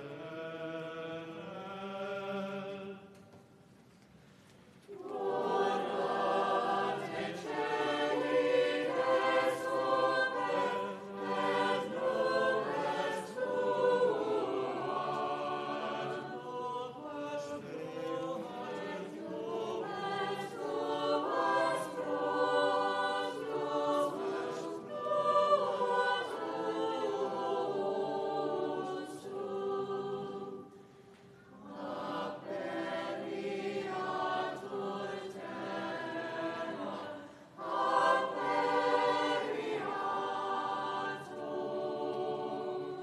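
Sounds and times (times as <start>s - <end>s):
church choir singing: 0.0s - 3.4s, 4.9s - 43.0s.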